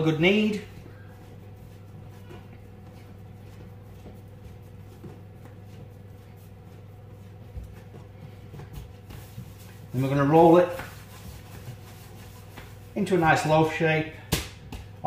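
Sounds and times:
dough being kneaded by hand: 0:00.0 - 0:15.0
steady low hum: 0:00.0 - 0:15.0.

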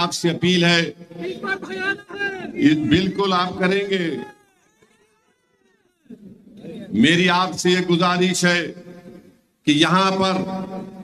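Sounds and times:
man speaking amplified: 0:00.0 - 0:04.4, 0:06.2 - 0:11.0.

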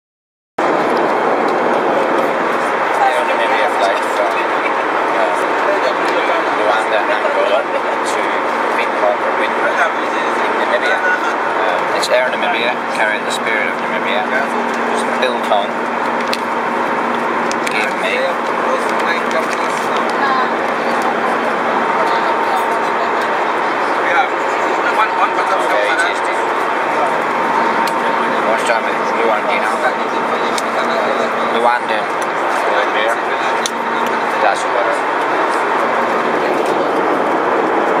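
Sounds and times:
aircraft cabin engine rush: 0:00.6 - 0:38.0
faint voices: 0:00.6 - 0:38.0.

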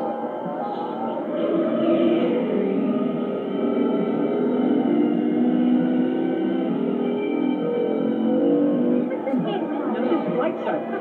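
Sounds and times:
muffled film soundtrack tones: 0:00.0 - 0:11.0.

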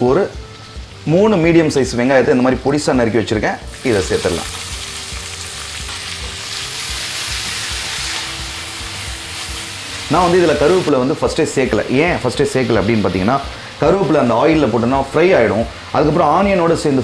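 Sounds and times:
onions sizzling in hot oil: 0:00.0 - 0:17.0.

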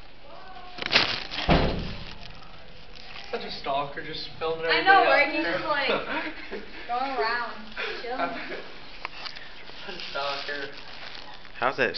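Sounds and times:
sudden thumps: 0:01.0 - 0:02.9.

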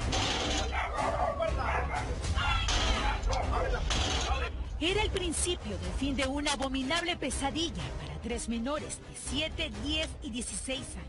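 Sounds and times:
dog barking: 0:00.5 - 0:03.9
men shouting: 0:00.6 - 0:04.6.

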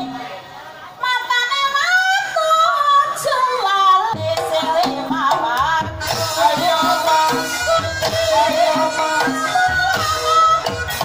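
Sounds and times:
high solo voice singing: 0:01.1 - 0:11.0.

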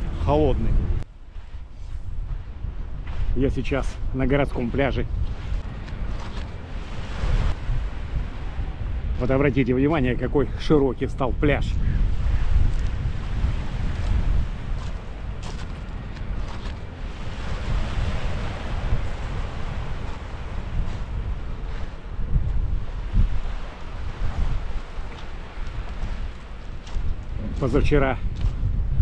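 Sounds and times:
wind buffeting microphone: 0:00.0 - 0:29.0
waves washing onto pebbles: 0:12.6 - 0:22.2, 0:22.8 - 0:28.2.

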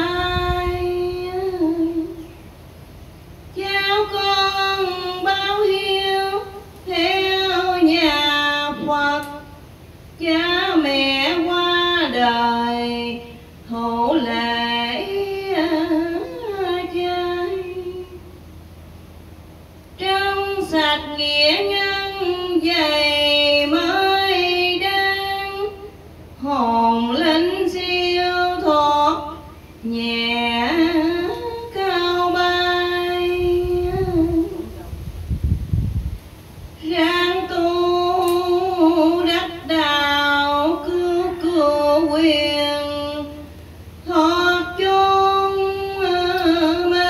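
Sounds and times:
woman chanting: 0:00.0 - 0:02.3, 0:03.5 - 0:09.6, 0:10.2 - 0:18.3, 0:20.0 - 0:35.0, 0:36.8 - 0:47.0.

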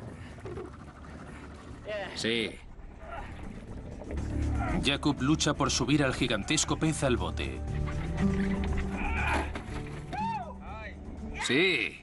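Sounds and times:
background music: 0:02.9 - 0:12.0
men shouting in excitement: 0:10.1 - 0:10.7.

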